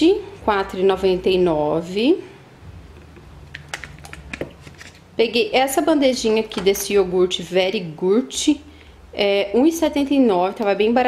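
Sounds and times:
plastic packaging clicks and taps: 0:03.5 - 0:04.6.

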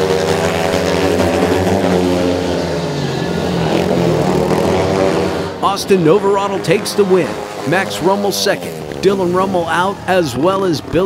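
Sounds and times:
motorcycle engines running hard: 0:00.0 - 0:11.0.

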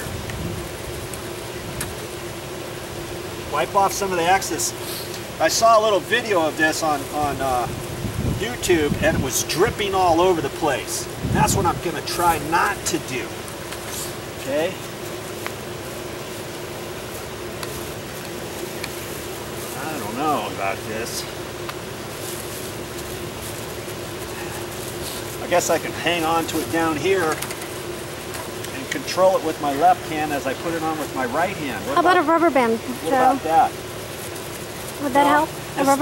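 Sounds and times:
background hum: 0:00.0 - 0:36.0.

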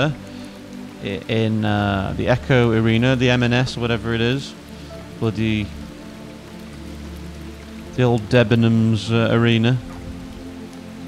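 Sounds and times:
ambient music with low drone: 0:00.0 - 0:11.0
running stream: 0:00.0 - 0:11.0.

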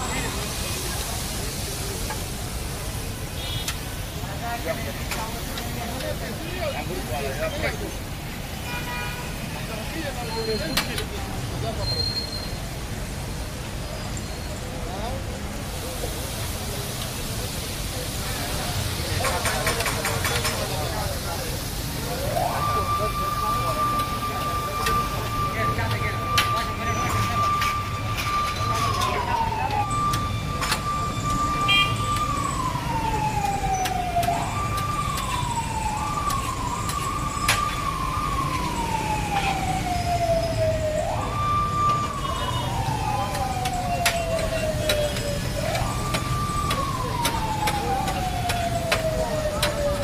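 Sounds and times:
motor-driven siren wailing: 0:21.9 - 0:50.0.

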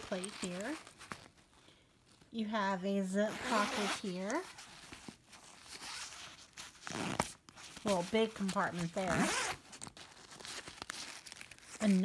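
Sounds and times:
zipper rasping: 0:00.0 - 0:01.3, 0:03.2 - 0:12.0
nylon fabric rustling: 0:00.0 - 0:12.0.

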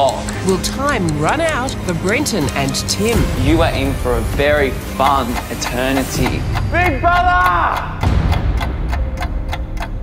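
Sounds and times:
clock ticking: 0:00.0 - 0:10.0.

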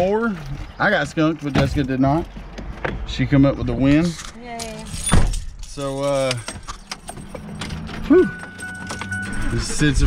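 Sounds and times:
vehicle cab hum: 0:06.0 - 0:10.0.

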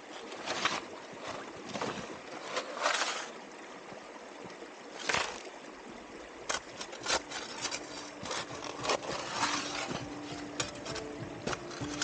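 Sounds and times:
running stream water: 0:00.0 - 0:12.0
splashes in shallow creek: 0:00.0 - 0:12.0.

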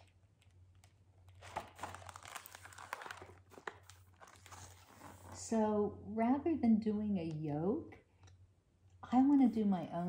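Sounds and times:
book pages rustling: 0:00.0 - 0:05.4.

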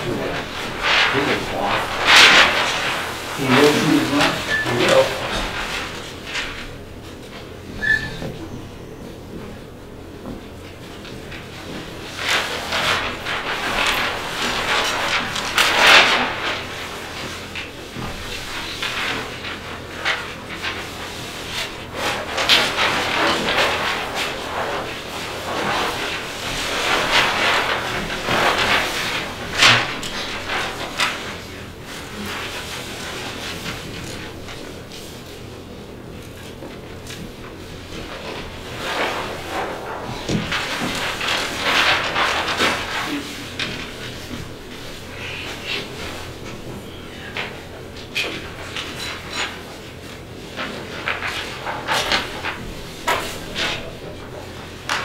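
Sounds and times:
paper sheets rustling and crackling: 0:00.0 - 0:55.0.

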